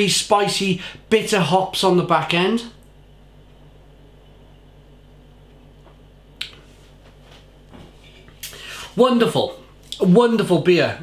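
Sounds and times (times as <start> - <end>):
low steady hum: 0.0 - 11.0
mouth click: 6.4 - 6.6.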